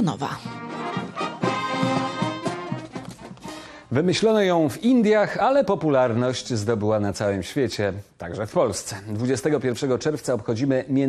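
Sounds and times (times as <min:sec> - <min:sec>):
marching brass band playing: 0:00.4 - 0:03.5.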